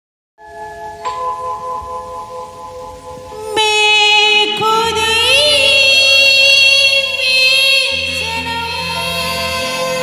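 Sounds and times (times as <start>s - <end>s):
chime-like struck note: 0.4s - 3.5s.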